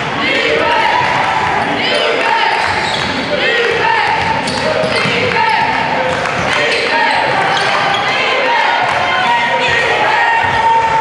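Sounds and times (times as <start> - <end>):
voices calling out: 0.0 - 11.0
sneaker squeaks: 2.5 - 3.4, 4.0 - 10.5.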